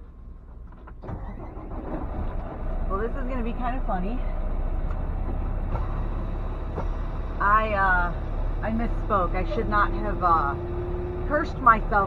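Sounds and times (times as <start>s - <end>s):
diesel truck engine rumbling: 0.0s - 12.0s
woman speaking: 7.4s - 10.6s, 11.3s - 12.0s.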